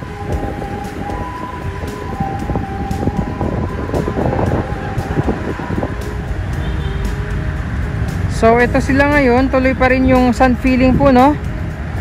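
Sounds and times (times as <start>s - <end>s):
high whine: 0.0s - 11.5s
engine and machinery rumble: 0.0s - 12.0s.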